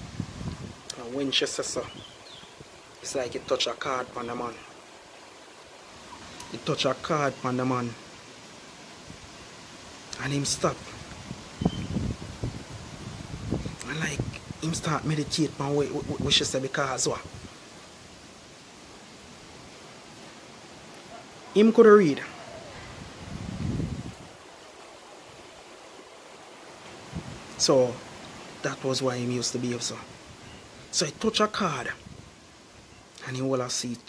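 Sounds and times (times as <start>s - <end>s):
faint background hiss: 0.0s - 34.0s.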